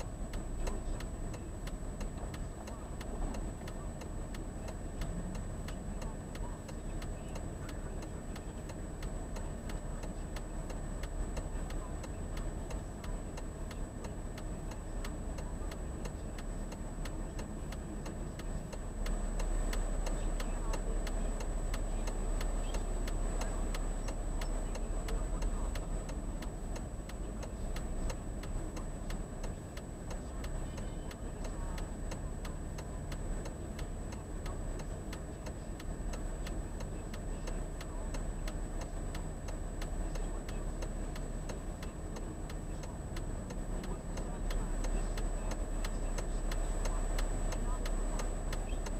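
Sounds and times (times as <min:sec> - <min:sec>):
low traffic rumble: 0:00.0 - 0:48.9
turn signal clicking: 0:00.0 - 0:48.9.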